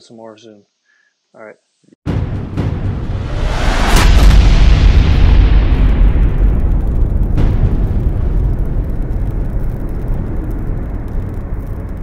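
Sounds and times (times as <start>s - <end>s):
deep steady rumble: 2.3s - 12.0s.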